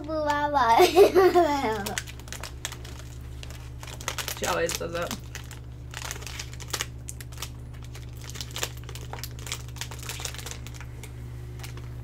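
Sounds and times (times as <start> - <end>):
plastic wrapper crinkling: 1.4 - 12.0.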